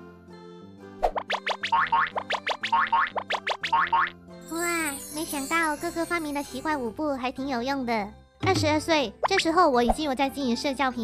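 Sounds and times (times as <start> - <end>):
playful bouncy music: 1.0 - 11.0.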